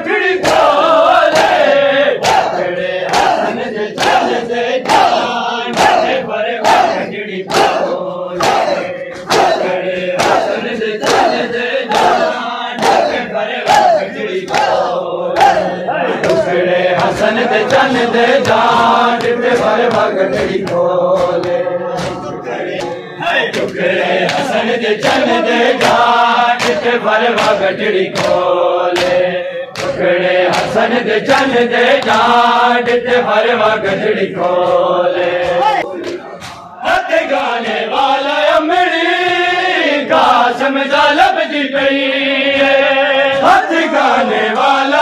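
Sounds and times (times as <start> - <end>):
crowd chanting: 0.0 - 45.0
hands slapping chests: 0.4 - 33.1, 34.4 - 37.0.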